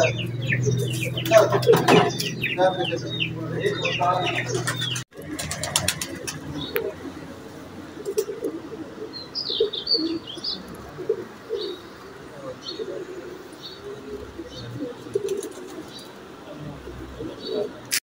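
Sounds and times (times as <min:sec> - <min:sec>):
pigeons cooing: 0:00.0 - 0:18.0
small birds chirping: 0:00.0 - 0:18.0.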